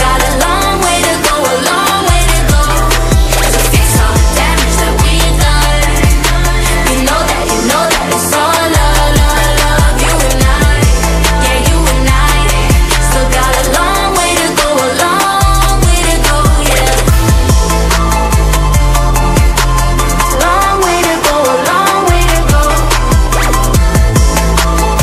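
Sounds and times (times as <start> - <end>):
female group singing pop song: 0.0 - 25.0
steady beat and deep bass: 0.0 - 25.0.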